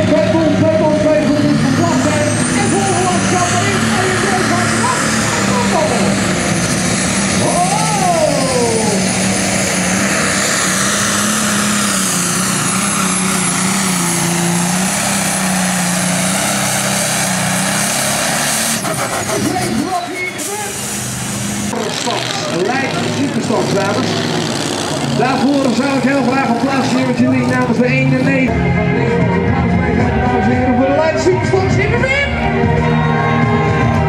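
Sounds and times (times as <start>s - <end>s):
diesel engine under load: 0.0s - 34.0s.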